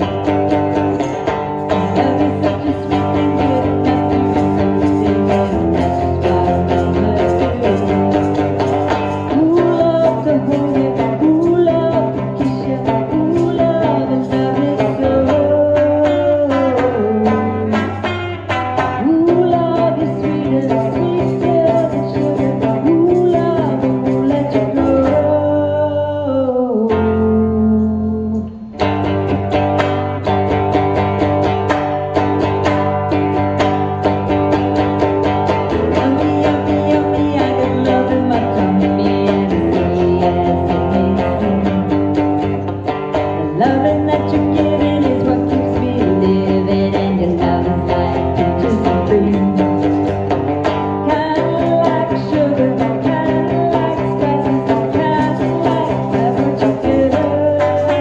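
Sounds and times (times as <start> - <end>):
electric guitar accompaniment: 0.0 - 58.0
woman singing: 0.0 - 58.0.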